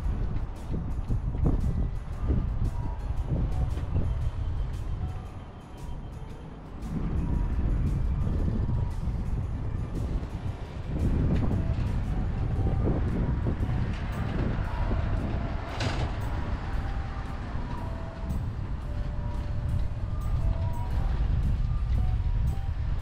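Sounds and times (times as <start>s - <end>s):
cars and trucks passing: 0.0s - 23.0s.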